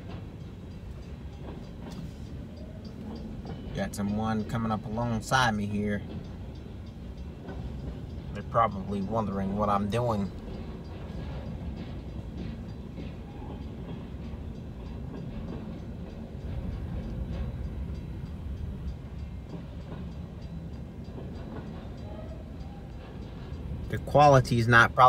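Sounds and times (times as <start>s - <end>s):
train wheels rumbling on rail: 0.0s - 25.0s.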